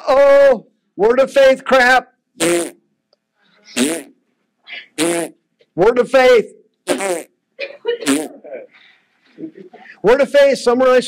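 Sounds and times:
faint breath: 8.7 - 10.0.

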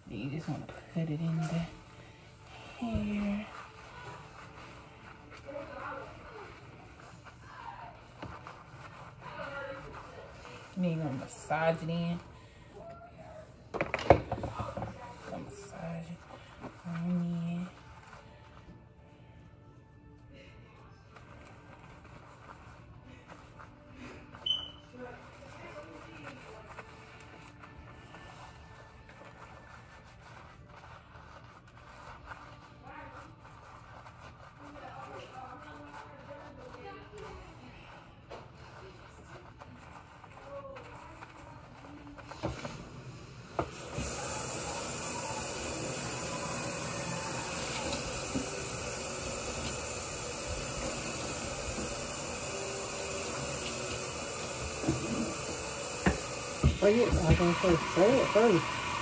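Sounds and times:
hands working shampoo lather: 0.0 - 19.4, 20.7 - 59.0
faucet water pouring into sink: 43.6 - 59.0.

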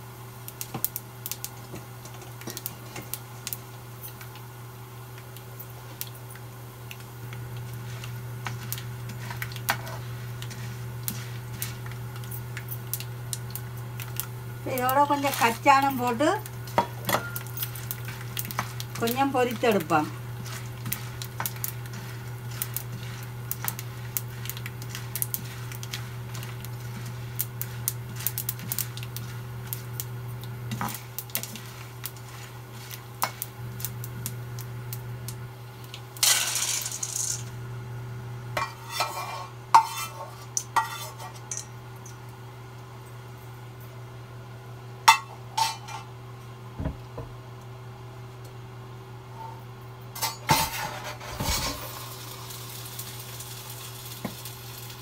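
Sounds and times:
steady low hum: 0.3 - 54.1
metal spoon scraping frying pan: 38.6 - 41.6.

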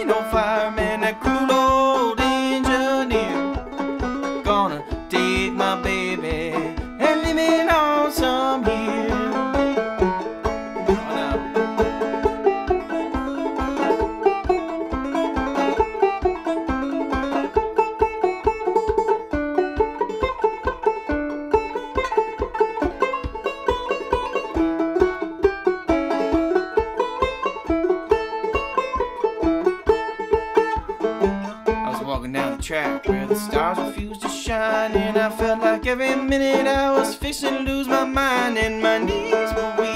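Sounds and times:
banjo picking: 0.0 - 39.9.

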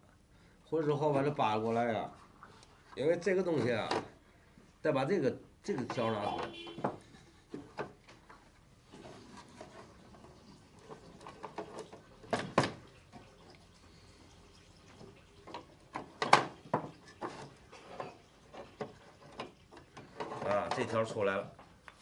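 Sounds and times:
wooden clicks and knocks: 5.7 - 8.4, 10.8 - 12.9, 15.5 - 21.0.

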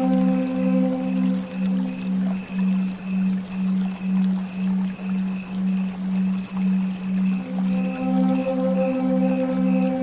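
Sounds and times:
faint high pulsing tone: 0.0 - 10.0
low pulsing electronic drone: 0.0 - 10.0.

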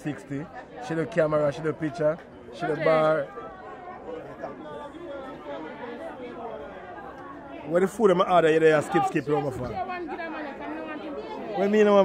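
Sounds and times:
background chatter of people: 0.0 - 12.0.

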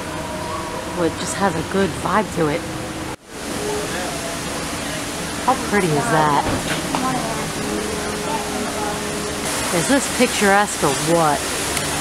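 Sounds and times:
small waterfall rushing into pond: 3.2 - 12.0
faint voices: 3.5 - 10.5.

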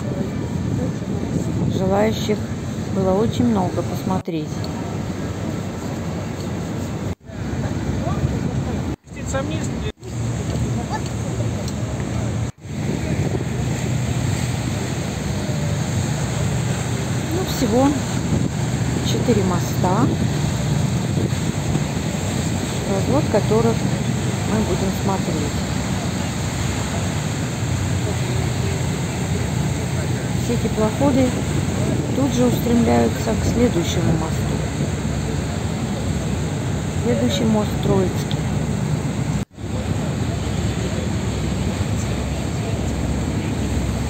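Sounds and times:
wind on microphone: 0.0 - 3.0, 4.8 - 44.0
boat engines rumbling: 0.0 - 44.0
water noise: 0.0 - 44.0.

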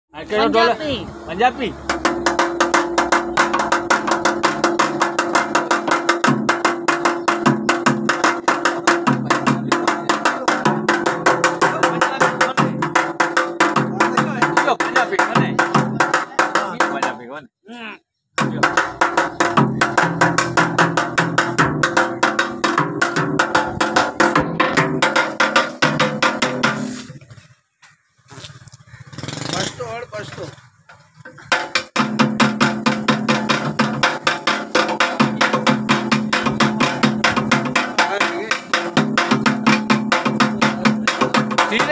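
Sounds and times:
plucked-string drum struck rhythmically: 1.8 - 17.2, 18.4 - 26.9, 31.5 - 41.9.

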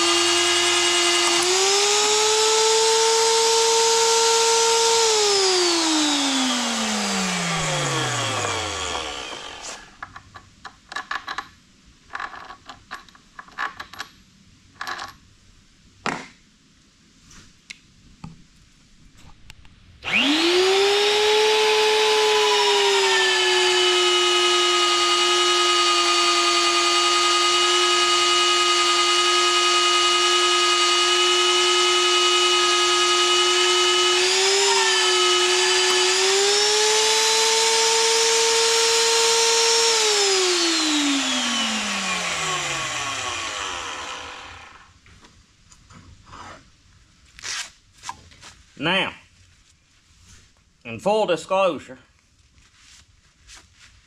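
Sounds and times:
drill motor whining: 0.0 - 10.0, 20.0 - 44.9.

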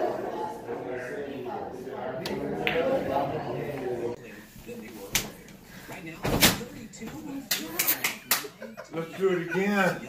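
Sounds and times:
hands clapping: 7.5 - 8.6.

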